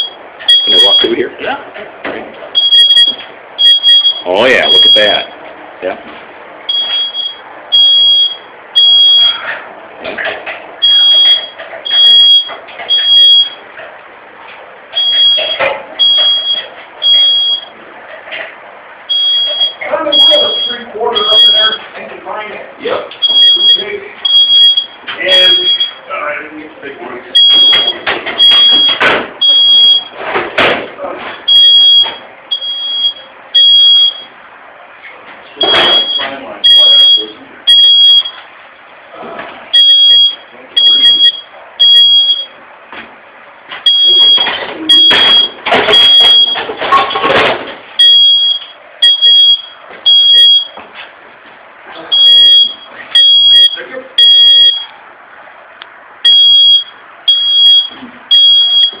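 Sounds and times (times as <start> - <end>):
smoke alarm beeping: 0.0 - 1.3, 2.5 - 5.4, 6.6 - 9.6, 10.8 - 13.7, 14.9 - 17.8, 18.9 - 21.9, 22.8 - 26.2, 27.3 - 34.4, 35.6 - 39.0, 39.7 - 42.6, 43.7 - 50.8, 52.1 - 55.0, 56.2 - 59.0.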